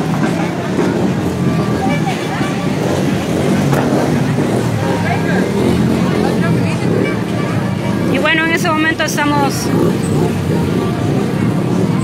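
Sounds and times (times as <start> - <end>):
street crowd chatter: 0.0 - 12.0
vehicle engine rumbling: 0.0 - 12.0.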